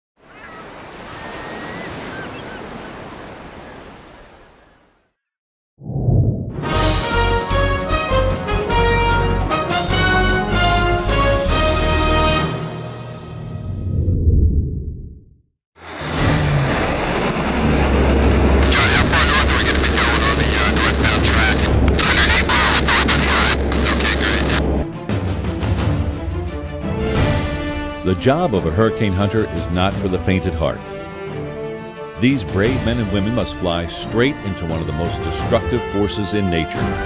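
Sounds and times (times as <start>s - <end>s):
faint high calls: 0.2s - 3.0s
ocean surf washing in: 0.2s - 4.6s, 15.8s - 24.6s
turboprop aircraft flying past: 15.8s - 21.0s.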